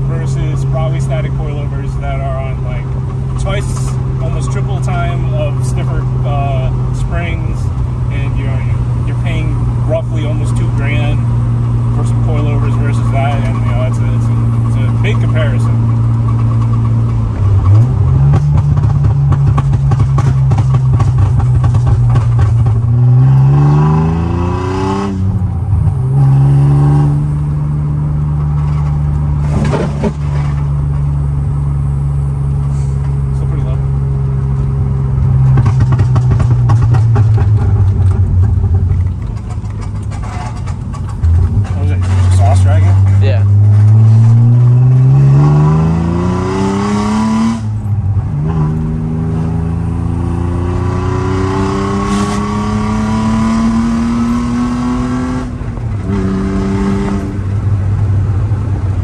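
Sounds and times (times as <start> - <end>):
car engine revving from cabin: 8.2 - 38.2, 41.3 - 57.8.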